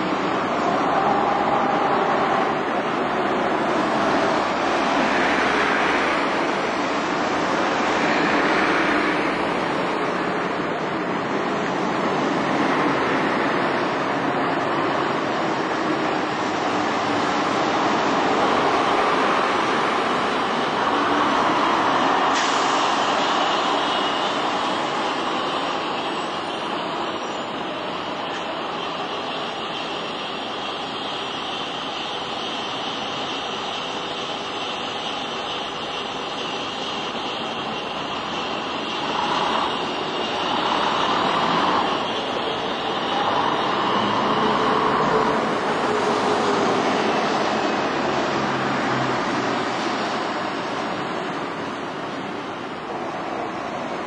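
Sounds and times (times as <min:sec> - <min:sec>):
bus diesel engine passing: 0:00.0 - 0:54.0
street traffic noise: 0:00.0 - 0:54.0.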